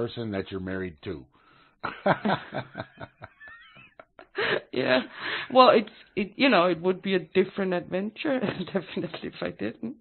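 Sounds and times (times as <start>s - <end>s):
person chuckling: 1.8s - 4.8s.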